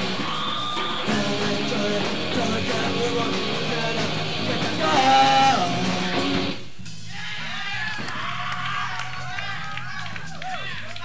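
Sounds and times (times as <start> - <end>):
audience shouts and whoops: 0.0 - 1.2, 7.1 - 11.0
punk rock band chord: 0.0 - 6.7.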